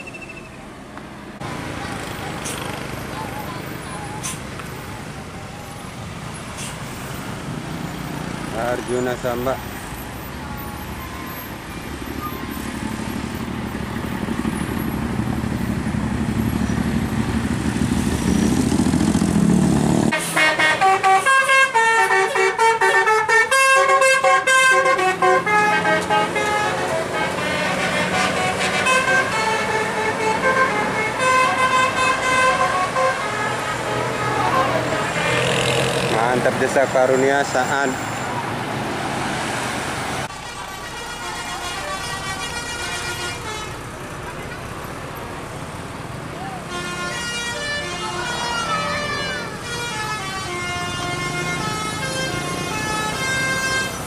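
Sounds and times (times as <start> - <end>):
bus engine rumble: 0.0 - 54.0
traffic noise: 0.0 - 54.0
multi-tone bus horn melody: 20.0 - 35.8, 40.3 - 44.8, 46.4 - 54.0.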